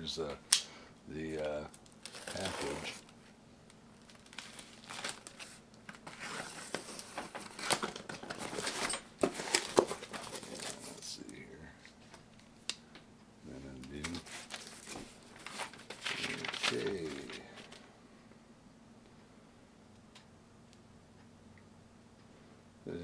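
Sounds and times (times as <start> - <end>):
tape and cardboard crinkling: 1.4 - 3.2, 4.0 - 11.1, 13.8 - 17.8
packing tape tearing: 2.0 - 3.1, 4.0 - 11.1, 13.9 - 17.4.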